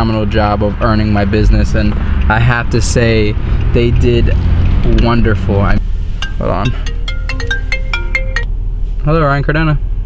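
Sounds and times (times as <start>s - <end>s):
car cabin hum: 0.0s - 9.4s
phone ringtone melody: 6.2s - 8.5s.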